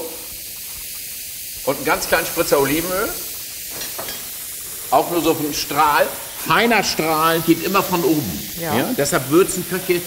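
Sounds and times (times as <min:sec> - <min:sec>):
mushrooms sizzling in a pan: 0:00.0 - 0:10.0
person speaking: 0:07.5 - 0:09.0.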